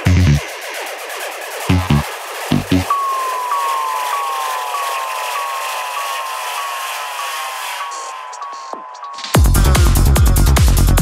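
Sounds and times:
hissing noise wash: 0.0 - 8.9
synth note sliding downward: 1.6 - 8.4.

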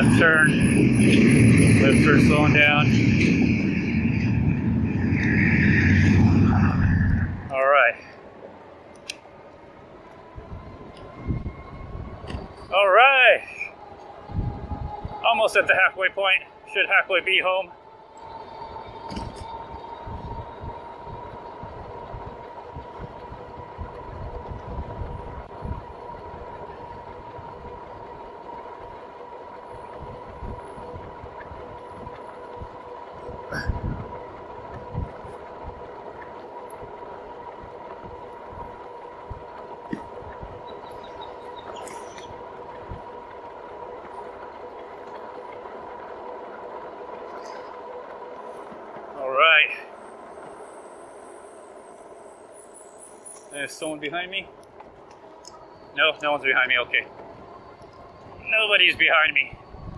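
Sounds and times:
electric bike motor whine: 0.0 - 7.6, 9.6 - 12.8, 13.7 - 49.0, 49.9 - 59.9
wind buffeting microphone: 0.0 - 7.6, 10.2 - 12.7, 13.5 - 49.1, 53.7 - 59.9
wavering high-pitched sound: 0.0 - 7.8
road and wind noise: 0.0 - 59.9.

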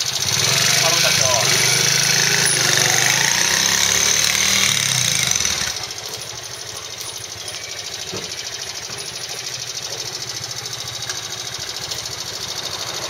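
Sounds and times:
motorcycle engine revving and idling: 0.0 - 13.0.

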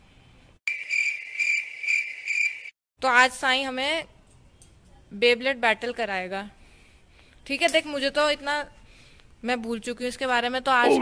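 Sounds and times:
cricket chirping: 0.7 - 2.7.

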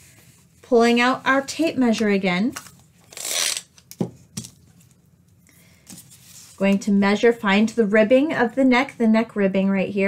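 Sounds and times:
tape measure rustling: 2.6 - 3.7.

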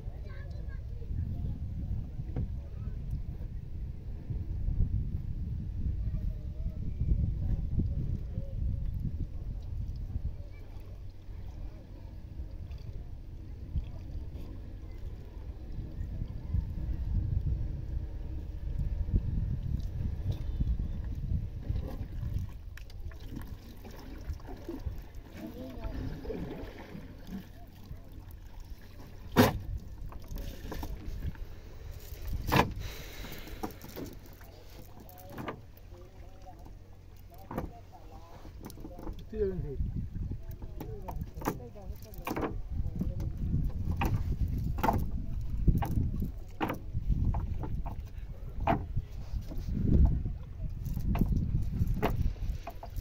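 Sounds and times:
low rumble of water and wind: 0.0 - 53.0
low steady hum: 0.0 - 53.0
soft thump on wooden boat: 2.2 - 2.6, 29.0 - 31.4, 32.4 - 34.2, 37.3 - 39.3, 40.6 - 50.4, 51.0 - 53.0
faint distant voices: 5.8 - 19.0
short knocks or splashes: 21.6 - 31.4, 32.1 - 35.8, 40.6 - 50.2.

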